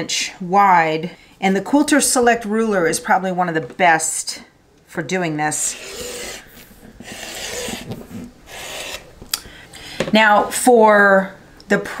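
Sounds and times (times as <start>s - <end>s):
rotary cutter slicing fabric: 5.5s - 9.1s.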